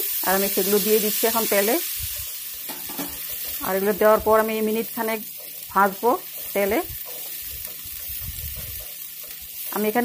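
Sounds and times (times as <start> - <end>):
paste sizzling in oil: 0.0 - 10.0
wooden spatula stirring: 2.1 - 10.0.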